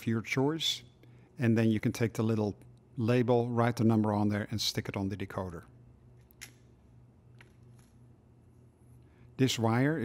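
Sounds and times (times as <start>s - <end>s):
faint low hum: 0.0s - 10.0s
small clicks of handled wires: 6.2s - 8.0s.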